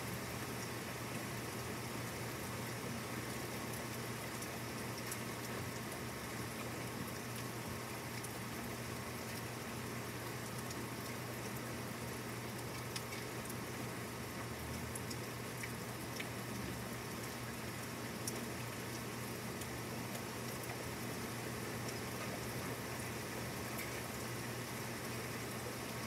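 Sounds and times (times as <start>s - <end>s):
steady rain falling: 0.0s - 26.0s.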